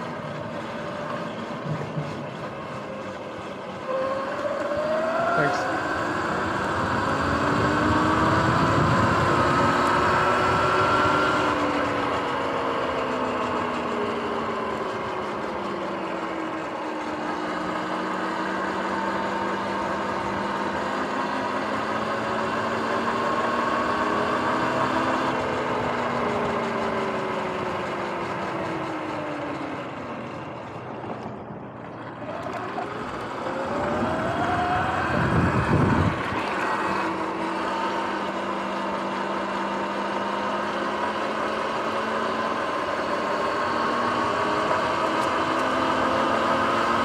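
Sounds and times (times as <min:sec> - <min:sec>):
wind and road noise: 0:00.0 - 0:47.0
electric motor whining: 0:02.8 - 0:28.8, 0:32.1 - 0:47.0.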